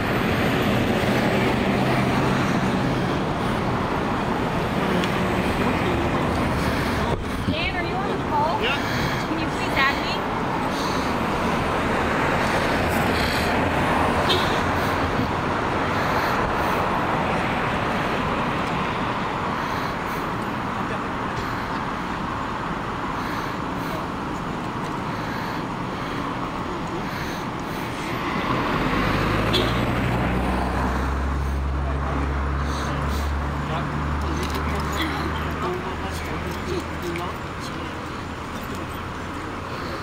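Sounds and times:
traffic rushing: 0.0 - 40.0
vehicle engine humming nearby: 0.0 - 40.0.

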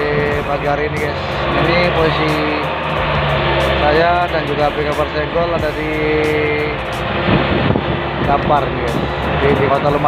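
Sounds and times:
boat engine running: 0.0 - 10.0
music playing: 0.0 - 10.0.

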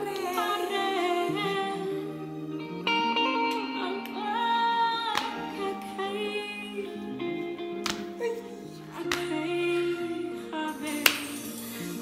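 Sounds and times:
gospel song: 0.0 - 12.0.

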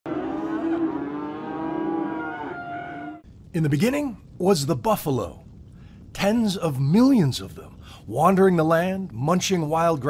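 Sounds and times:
cow mooing: 0.1 - 3.2.

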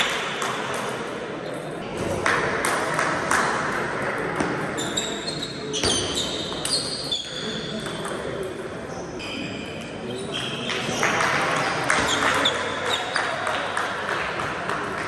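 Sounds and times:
voices in hall: 0.0 - 15.0.

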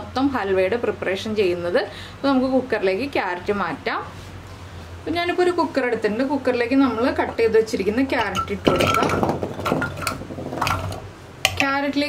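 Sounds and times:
carrot chunks clattering into a pot: 8.2 - 11.8.

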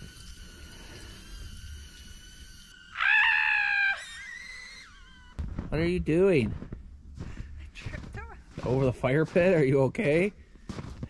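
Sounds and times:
person screaming: 2.9 - 4.9.

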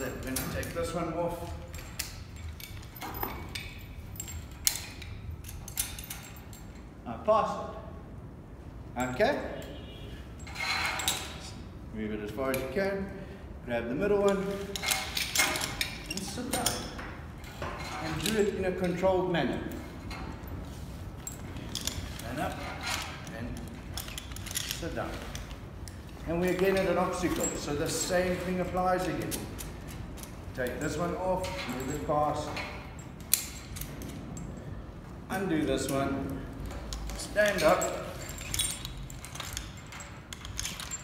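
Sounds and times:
metal carabiners clinking: 0.0 - 7.2, 8.8 - 41.0.

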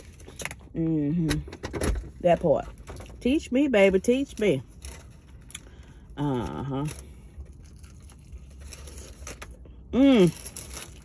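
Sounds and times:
low steady hum: 0.0 - 11.0
chewing crispy chicken: 6.5 - 11.0.

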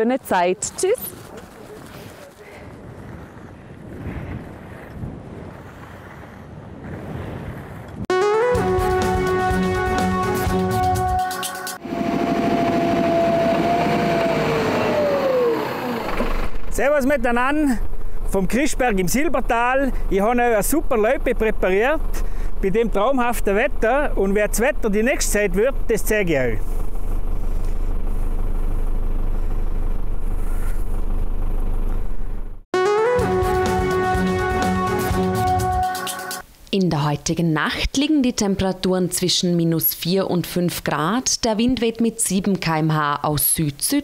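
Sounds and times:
music jingle: 8.1 - 11.8, 32.8 - 36.4
snow groomer engine whining: 8.2 - 35.8.

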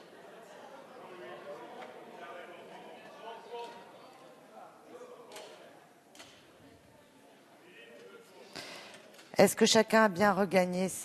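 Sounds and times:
faint murmur of voices: 0.0 - 9.4.

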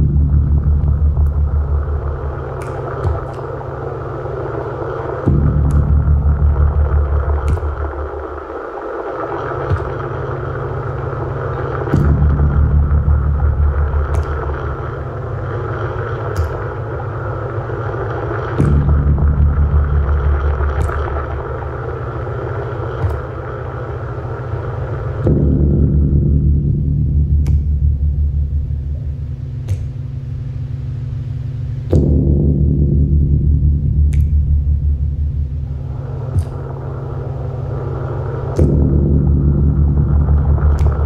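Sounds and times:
pulsing low synth bass: 0.0 - 41.0
sharp click: 2.6 - 3.6, 14.1 - 14.6, 27.4 - 27.8, 29.6 - 30.1, 34.0 - 34.8, 35.8 - 36.8, 40.6 - 41.0
hissing mid-range wash: 6.9 - 12.2, 13.1 - 25.2, 35.6 - 38.7.

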